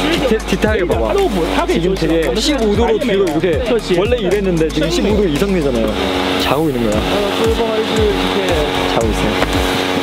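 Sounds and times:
background music with chords: 0.0 - 10.0
kick drum thumps: 9.1 - 9.8.

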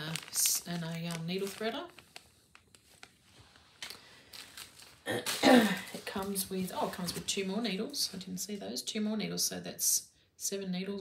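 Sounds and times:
plastic bag crinkling: 0.0 - 8.2.

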